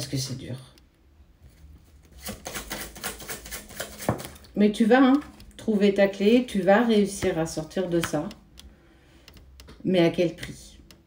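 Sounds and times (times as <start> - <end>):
cards being shuffled: 1.6 - 4.5.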